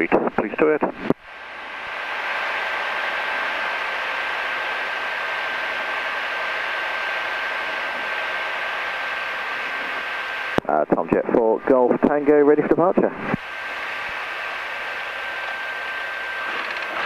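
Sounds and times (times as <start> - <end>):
thin steady whine: 0.0 - 17.0
light aircraft engine and cabin noise: 1.8 - 17.0.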